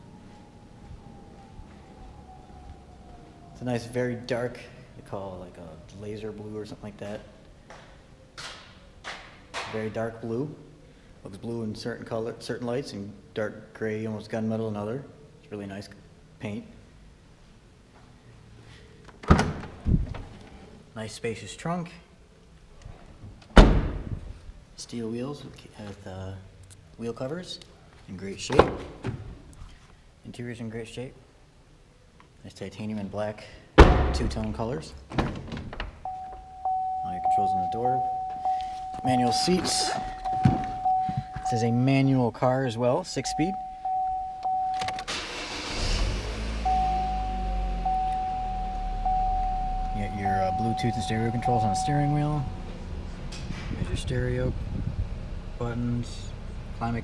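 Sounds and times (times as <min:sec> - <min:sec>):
car trunk lid slamming shut: 0:33.8 - 0:34.4
thin high tone: 0:36.1 - 0:41.9, 0:46.7 - 0:52.6
car engine starting and idling: 0:43.6 - 0:57.0.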